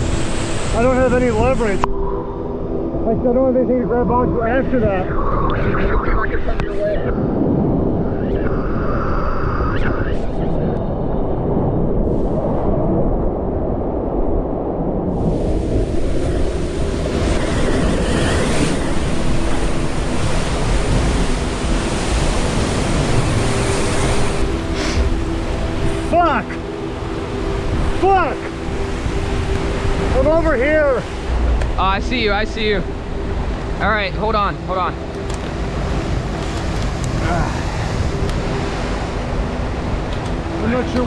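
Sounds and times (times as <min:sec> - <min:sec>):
ocean surf breaking on rocks: 0:00.0 - 0:01.9, 0:15.2 - 0:41.0.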